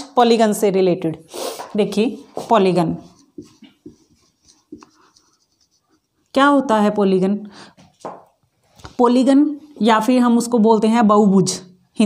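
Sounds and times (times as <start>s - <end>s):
marker pen writing on whiteboard: 1.6s - 6.2s.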